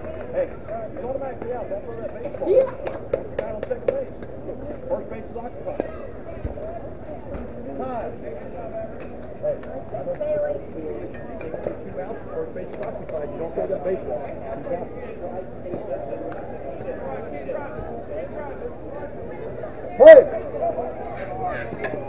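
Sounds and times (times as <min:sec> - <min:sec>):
crowd chatter and calls: 0:00.0 - 0:22.0.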